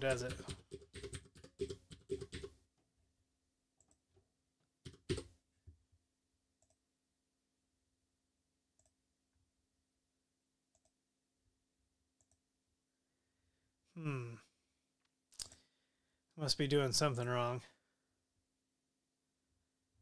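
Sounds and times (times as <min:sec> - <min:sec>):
computer keyboard keystrokes: 0:00.0 - 0:02.5, 0:04.8 - 0:05.3.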